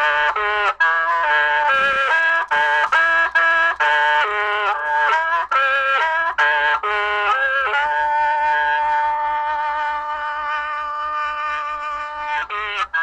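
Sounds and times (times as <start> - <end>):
mouth organ playing chords: 0.0 - 13.0.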